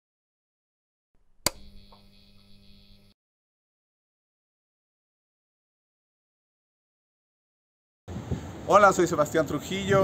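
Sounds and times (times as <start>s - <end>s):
faint electrical hum: 1.2s - 3.2s
sharp click: 1.4s - 3.2s.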